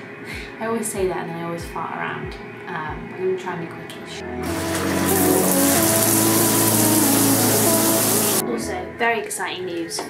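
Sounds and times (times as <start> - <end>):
shower water pouring: 4.4 - 8.4.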